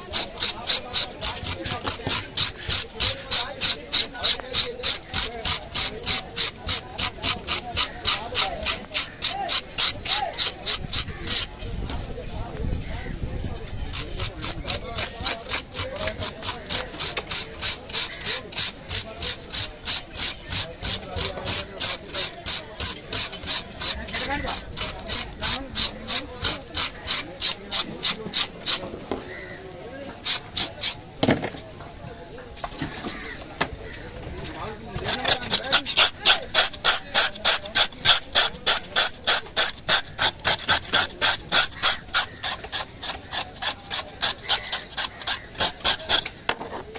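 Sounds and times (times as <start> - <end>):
knife scraping fish scales: 0.0 - 12.1, 13.4 - 31.1, 34.8 - 46.9.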